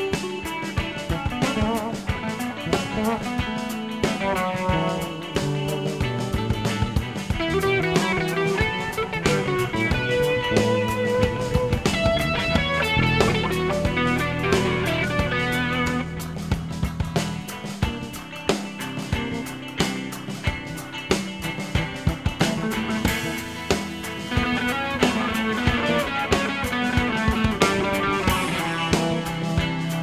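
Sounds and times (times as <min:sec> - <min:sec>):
drum kit: 0:00.0 - 0:30.0
electric bass: 0:00.0 - 0:30.0
electric guitars playing: 0:00.0 - 0:30.0.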